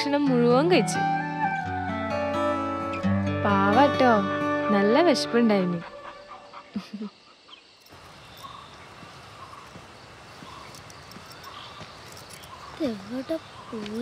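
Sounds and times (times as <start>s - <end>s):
faint outdoor background hiss: 0.0s - 14.0s.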